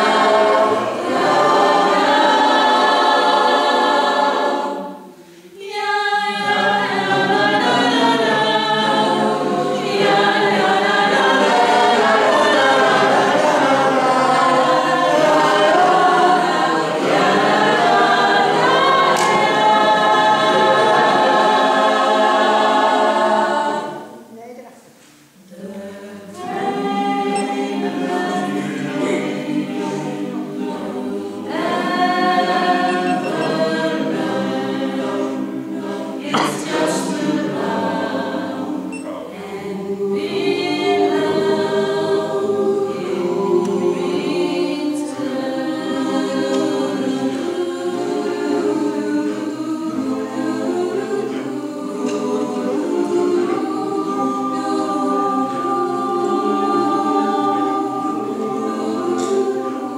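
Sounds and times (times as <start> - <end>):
mixed choir singing: 0.0 - 24.3, 25.2 - 59.9.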